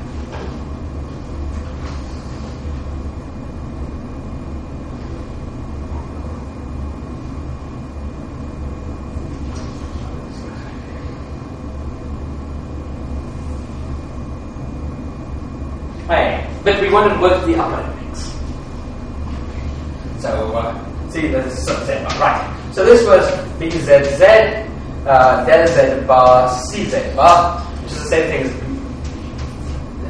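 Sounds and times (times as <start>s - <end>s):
high-pitched whine: 0.0s - 30.0s
low room hum: 0.0s - 30.0s.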